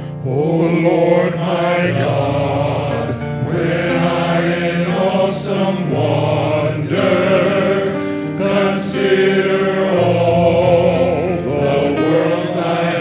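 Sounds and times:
men's chorus singing: 0:00.0 - 0:13.0
soloists singing into microphones: 0:00.0 - 0:13.0.

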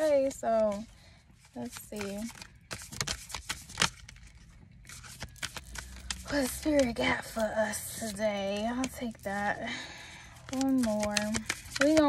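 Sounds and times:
cards being shuffled: 0:00.0 - 0:09.6, 0:10.3 - 0:12.0.

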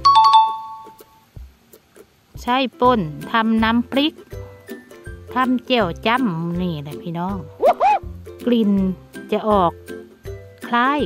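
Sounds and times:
two-note ding-dong chime: 0:00.0 - 0:01.0.

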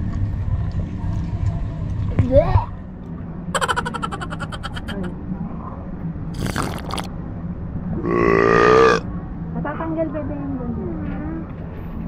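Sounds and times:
man burping: 0:08.0 - 0:09.0.

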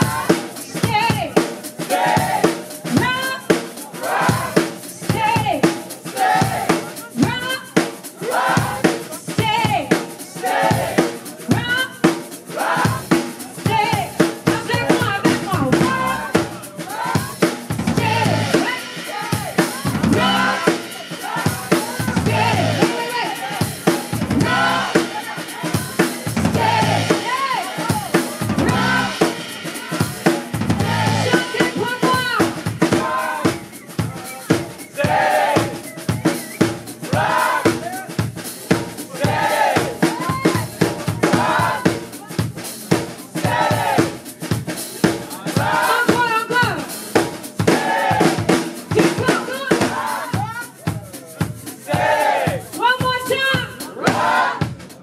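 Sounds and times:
woman singing: 0:00.0 - 0:01.5, 0:02.8 - 0:03.7, 0:04.3 - 0:05.8, 0:07.1 - 0:07.8, 0:08.5 - 0:10.0, 0:11.5 - 0:12.1, 0:12.9 - 0:23.6, 0:31.2 - 0:33.6, 0:48.9 - 0:50.4
drum kit steady beat: 0:00.0 - 0:55.0
bass guitar: 0:17.9 - 0:18.5, 0:20.0 - 0:20.6, 0:22.1 - 0:22.8, 0:24.2 - 0:25.0, 0:26.4 - 0:27.1, 0:28.5 - 0:29.2, 0:30.6 - 0:31.4.

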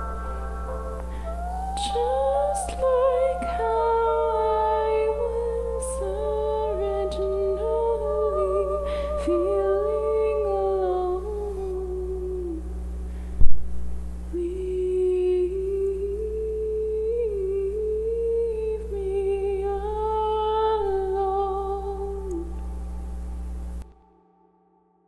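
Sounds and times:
woman humming a slow melody: 0:00.0 - 0:12.8, 0:14.3 - 0:23.2
steady low drone: 0:00.0 - 0:13.1, 0:13.9 - 0:24.4.

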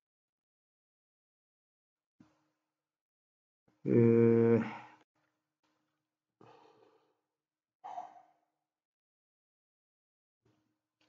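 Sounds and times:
man sighing: 0:03.9 - 0:04.8.

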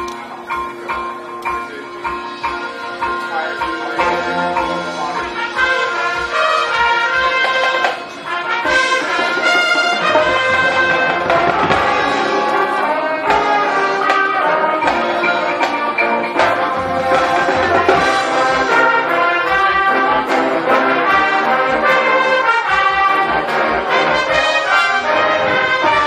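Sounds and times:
brass chords: 0:00.0 - 0:26.0.

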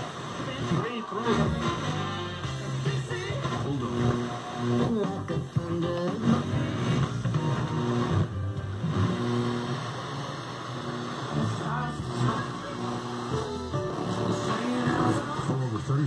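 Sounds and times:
radio music and talk: 0:00.0 - 0:16.0.

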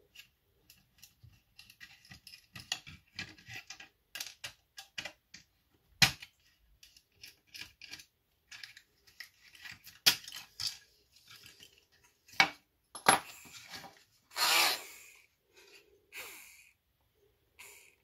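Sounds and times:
plastic parts clicking and clattering: 0:00.0 - 0:14.1.

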